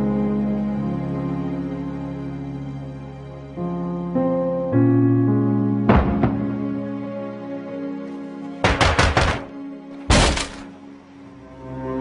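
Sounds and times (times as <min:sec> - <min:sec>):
sad sustained string music: 0:00.0 - 0:08.6, 0:09.5 - 0:12.0
loud heavy thud: 0:10.1 - 0:10.7.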